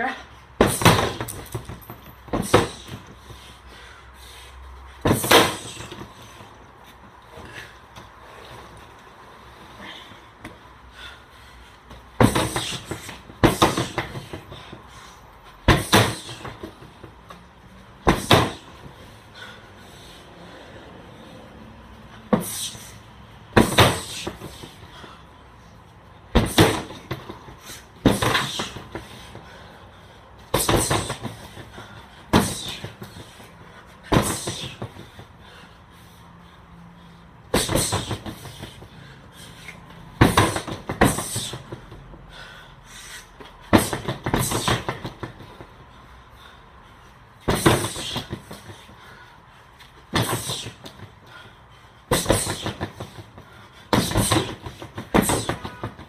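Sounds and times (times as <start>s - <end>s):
kicks and punches on heavy bag: 0.6s - 3.3s, 5.0s - 6.2s, 12.1s - 14.8s, 15.6s - 17.2s, 18.0s - 19.0s, 23.5s - 24.9s, 26.3s - 29.2s, 30.5s - 35.2s, 37.5s - 38.9s, 40.1s - 42.0s, 43.6s - 45.7s, 47.4s - 48.9s, 50.1s - 51.2s, 52.1s - 56.0s.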